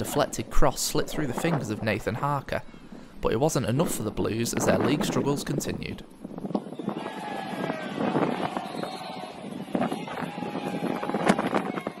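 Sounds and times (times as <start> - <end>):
wind buffeting microphone: 0.0 - 2.2, 3.4 - 12.0.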